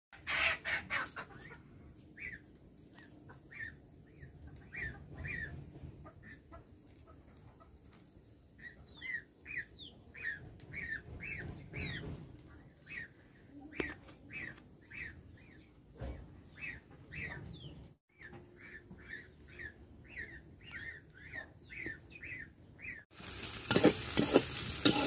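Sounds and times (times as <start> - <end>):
bird chirping: 8.6 - 23.1.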